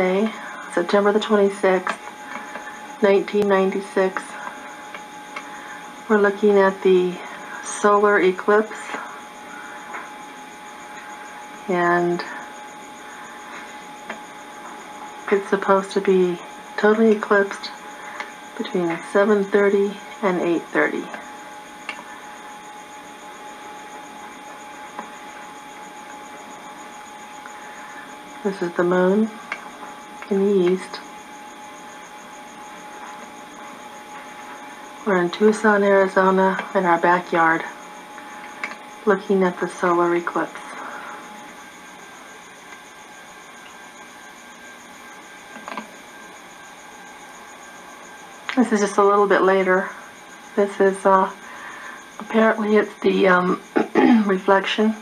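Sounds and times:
camcorder recording hiss: 0:00.0 - 0:55.0
faint constant tone: 0:00.0 - 0:55.0.

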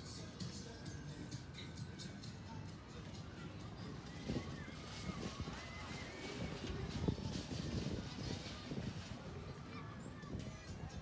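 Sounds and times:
distant voices: 0:00.0 - 0:11.0
funfair din: 0:00.0 - 0:11.0.

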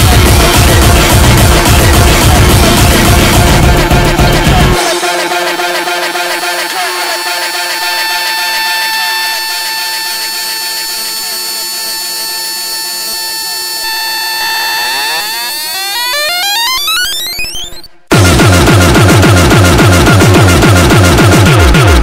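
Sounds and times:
synthesizer sweeping upward: 0:00.0 - 0:21.4
loud electronic beat with heavy bass: 0:00.0 - 0:22.0.

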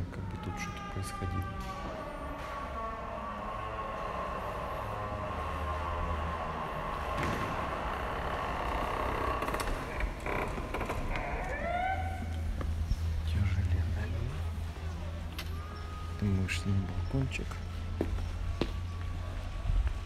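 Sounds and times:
door hinges creaking: 0:00.0 - 0:12.5.

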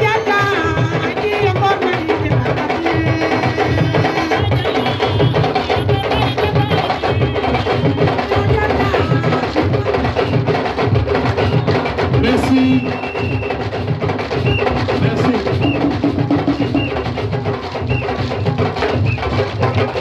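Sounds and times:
hand drums playing: 0:00.0 - 0:20.0.

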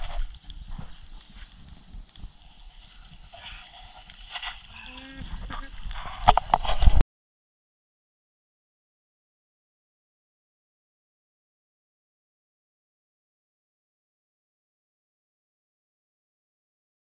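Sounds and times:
high-pitched insect drone: 0:00.0 - 0:07.0.

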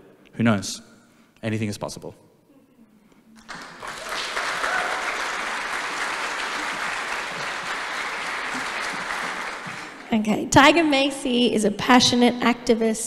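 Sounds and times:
audience applauding: 0:03.4 - 0:10.2.

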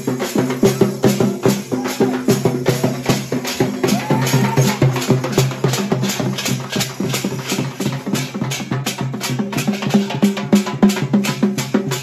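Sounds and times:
rapid drum and percussion strokes: 0:00.0 - 0:12.0.

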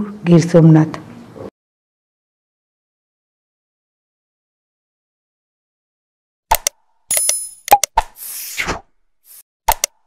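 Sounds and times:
clicks: 0:06.5 - 0:08.1, 0:09.7 - 0:10.0
sharp pops: 0:06.5 - 0:10.0.

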